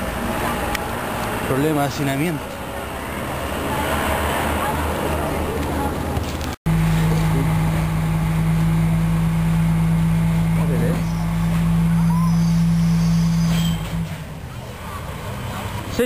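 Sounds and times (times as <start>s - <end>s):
vehicle engine humming: 0.0s - 16.0s.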